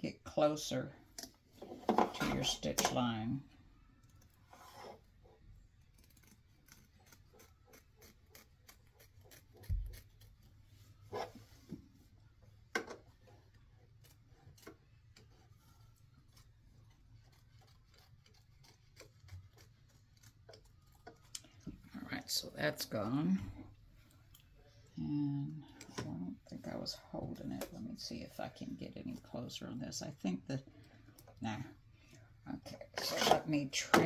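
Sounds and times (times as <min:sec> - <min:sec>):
scissors snipping fabric: 0:05.8 - 0:10.5, 0:17.2 - 0:21.5.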